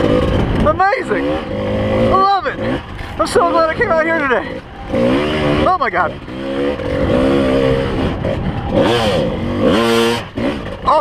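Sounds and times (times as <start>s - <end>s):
two-stroke dirt bike engine revving: 0.0s - 11.0s.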